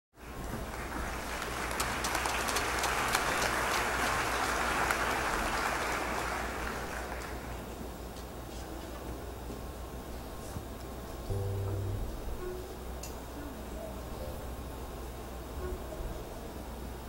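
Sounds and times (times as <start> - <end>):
audience applauding: 0.6 - 7.6.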